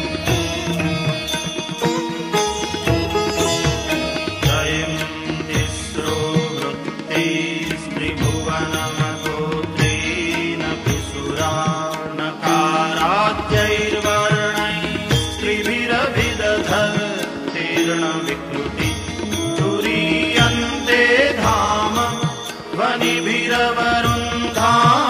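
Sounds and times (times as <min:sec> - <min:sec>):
instrumental accompaniment: 0:00.0 - 0:25.0.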